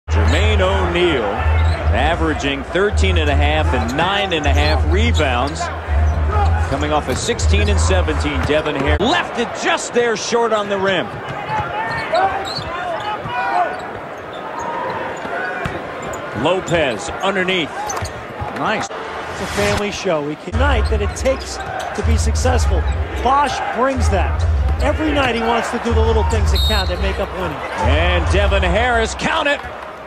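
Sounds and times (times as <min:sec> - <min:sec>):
commentator talking: 0:00.1 - 0:05.8, 0:06.7 - 0:11.2, 0:18.6 - 0:29.7
arena crowd noise: 0:00.1 - 0:30.0.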